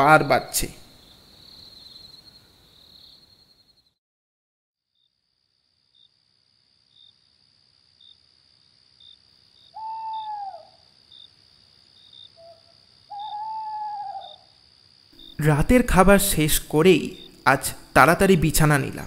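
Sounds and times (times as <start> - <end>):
crickets chirping: 0.0 - 4.0, 5.0 - 19.0
owl hooting: 9.7 - 10.9, 12.3 - 14.6.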